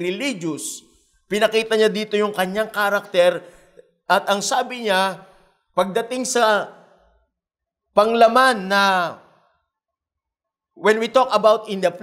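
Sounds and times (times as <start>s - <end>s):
man speaking: 0.0s - 7.0s, 8.0s - 9.2s, 10.8s - 12.0s.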